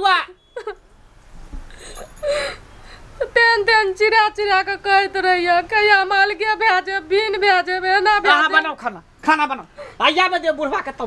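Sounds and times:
woman sobbing: 0:00.6 - 0:00.8, 0:01.7 - 0:04.2.

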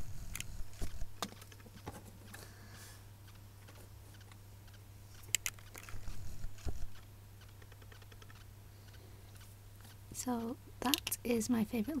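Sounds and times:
low steady hum: 0:00.0 - 0:12.0
small plastic clicks: 0:03.3 - 0:09.5, 0:10.8 - 0:11.2.

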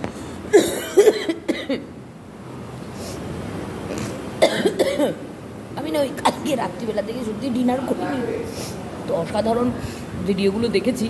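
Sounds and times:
woman coughing: 0:00.5 - 0:01.9, 0:04.4 - 0:05.2, 0:06.2 - 0:06.6.

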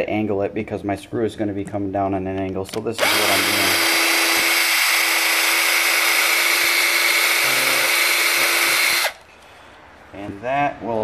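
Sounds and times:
power drill boring plastic pipe: 0:03.0 - 0:09.2.

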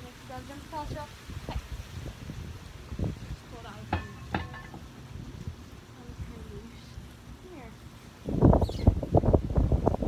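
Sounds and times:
objects knocking and clattering: 0:03.9 - 0:04.9.

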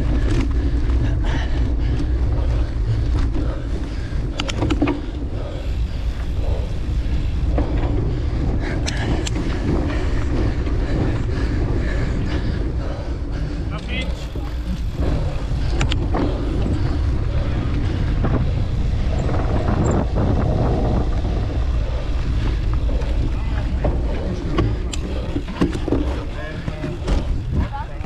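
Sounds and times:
bike knocks and rattles: 0:00.0 - 0:28.0
wind rumbling on microphone: 0:00.0 - 0:28.0.

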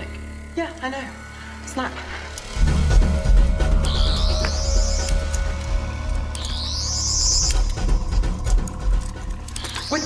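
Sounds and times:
low musical drone: 0:00.0 - 0:10.0.

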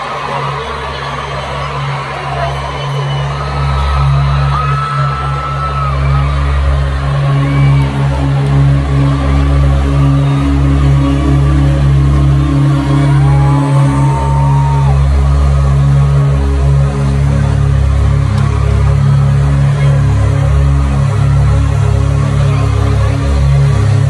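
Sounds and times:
crowd screaming: 0:00.0 - 0:17.4
low electronic drone: 0:00.0 - 0:24.0.

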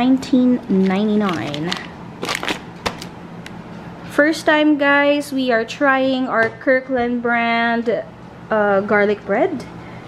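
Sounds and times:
plastic packaging crinkling: 0:00.7 - 0:03.2.

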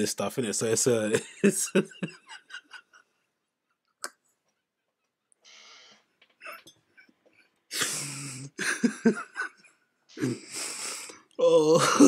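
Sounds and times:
man bursting into laughter: 0:01.4 - 0:03.0, 0:07.8 - 0:09.6.

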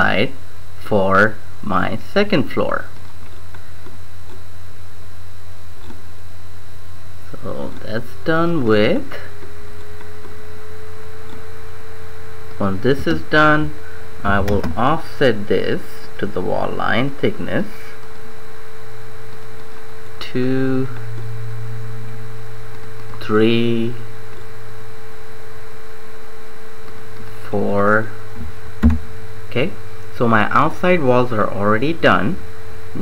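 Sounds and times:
background hiss: 0:00.0 - 0:33.0
electrical hum: 0:00.0 - 0:33.0
faint high whine: 0:00.0 - 0:33.0.

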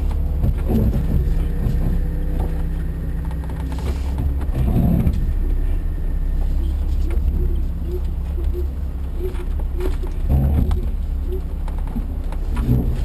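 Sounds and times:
knocks from rough ground: 0:00.0 - 0:05.5, 0:09.3 - 0:13.0
car engine at low revs: 0:00.0 - 0:13.0.

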